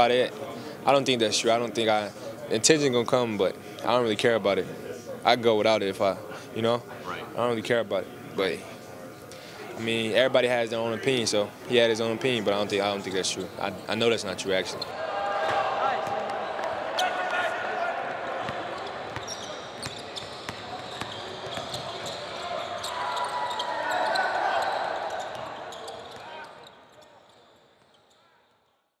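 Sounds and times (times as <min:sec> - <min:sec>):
crowd chattering: 0:00.0 - 0:26.8
basketball bouncing on court: 0:18.4 - 0:22.4.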